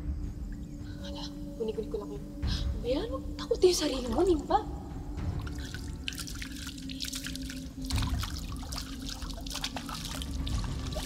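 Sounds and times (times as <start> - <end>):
water splashing and dripping: 5.1 - 11.0.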